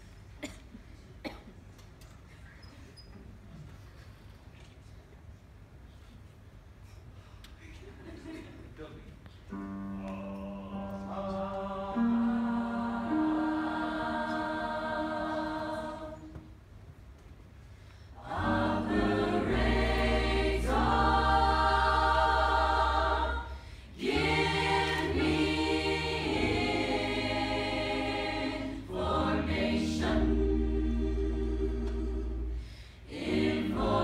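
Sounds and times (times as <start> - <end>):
choir singing with band: 10.9 - 16.4, 18.2 - 34.0.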